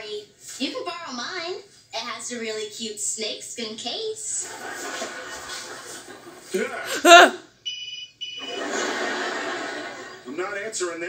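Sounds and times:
audience laughter from laugh track: 4.4s - 7.3s, 8.4s - 10.3s.

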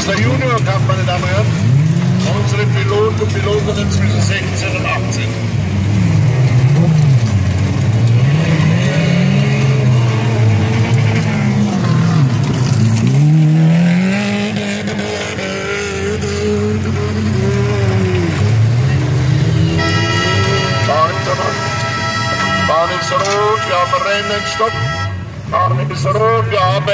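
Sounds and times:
car engines revving: 0.0s - 26.9s.

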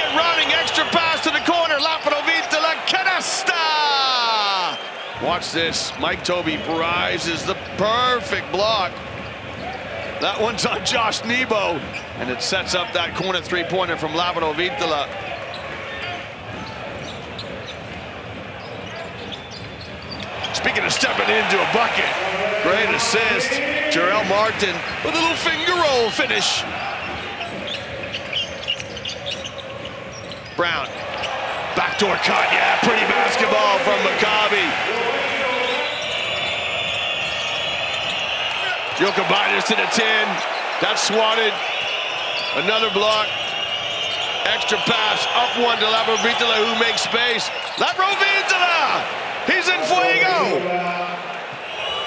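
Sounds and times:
arena crowd hum: 0.0s - 52.0s
man shouting excitedly: 2.9s - 4.8s
sneakers squeaking on hardwood: 5.9s - 23.3s, 24.0s - 34.8s, 35.4s - 48.4s.

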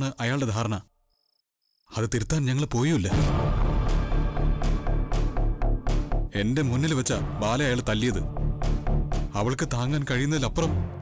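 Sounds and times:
man speaking: 6.3s - 8.4s, 9.3s - 10.9s.

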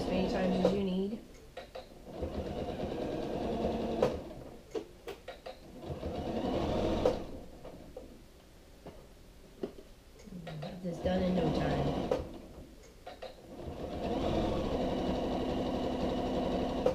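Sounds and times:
sewing machine stitching: 0.0s - 0.9s, 2.1s - 4.4s, 5.6s - 7.4s, 10.9s - 12.4s, 13.2s - 16.9s.

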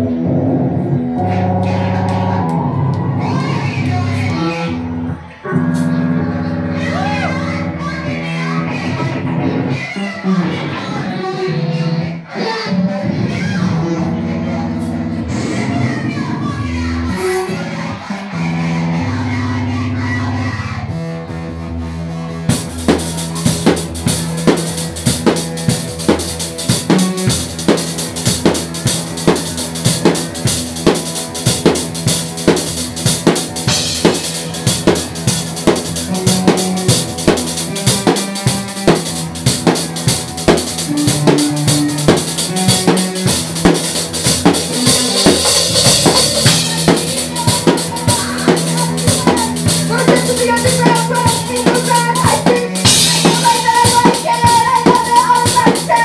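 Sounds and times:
live band playing loud: 0.0s - 56.0s
fast drum kit beats and cymbals: 21.8s - 56.0s.

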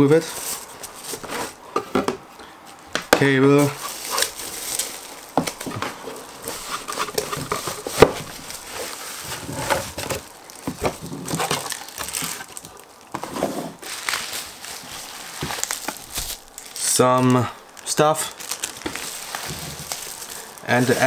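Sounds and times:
bubble wrap crinkling: 0.2s - 1.6s, 2.7s - 21.0s.

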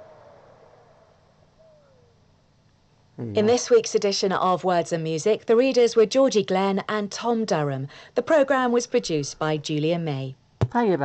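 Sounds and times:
faint radio hiss: 0.0s - 11.0s.

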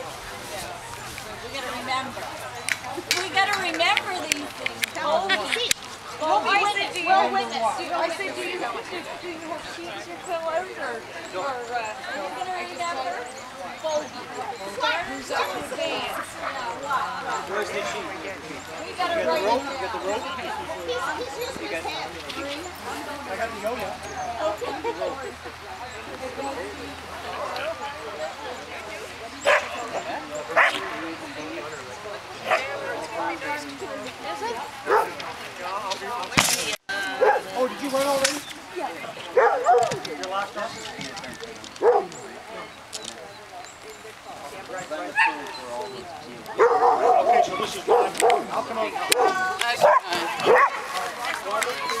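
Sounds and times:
murmur of voices: 0.0s - 52.0s
people talking: 0.0s - 52.0s
dog barking: 29.4s - 29.8s, 30.6s - 30.8s, 34.9s - 35.1s, 39.4s - 40.0s, 41.8s - 42.2s, 46.6s - 48.5s, 49.1s - 50.9s.

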